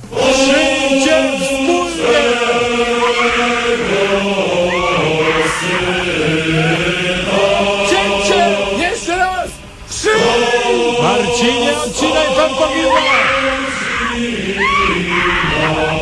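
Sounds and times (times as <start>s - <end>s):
voices chanting a hymn: 0.0s - 16.0s.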